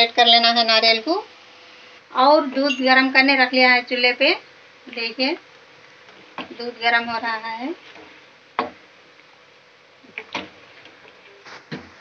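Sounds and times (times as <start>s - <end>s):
low hiss: 0.0s - 12.0s.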